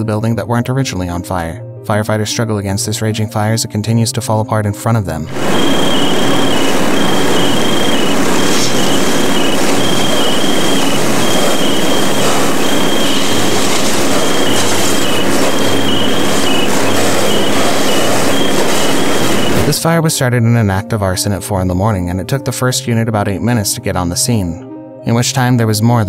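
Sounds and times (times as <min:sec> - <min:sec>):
fire hoses spraying water: 0:05.3 - 0:19.8
loud rushing noise: 0:05.3 - 0:19.8
thin high whine: 0:05.3 - 0:19.8.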